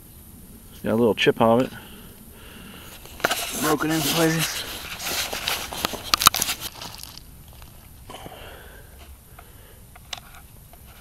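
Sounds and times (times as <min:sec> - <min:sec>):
gravel crunching and clicking: 0:00.8 - 0:11.0.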